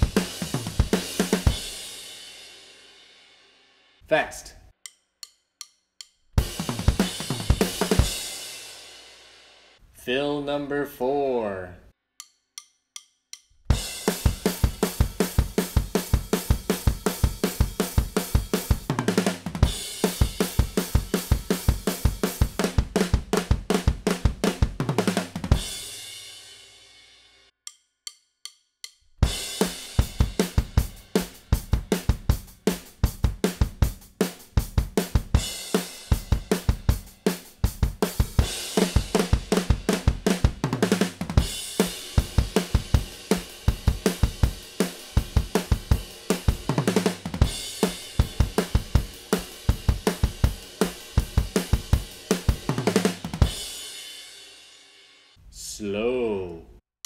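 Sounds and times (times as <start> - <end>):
fast punk drum beat: 0.0 - 2.9, 6.4 - 9.5, 13.7 - 26.4, 29.2 - 54.5.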